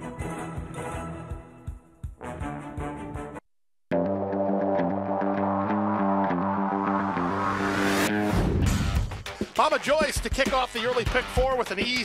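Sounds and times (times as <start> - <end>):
synthesizer chords: 3.9 - 8.4
rising whoosh: 6.6 - 8.6.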